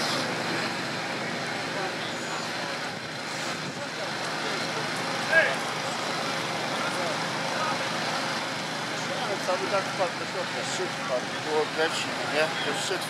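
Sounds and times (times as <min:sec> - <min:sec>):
fire engine pump running: 0:00.0 - 0:13.0
fire hoses spraying water: 0:00.0 - 0:13.0.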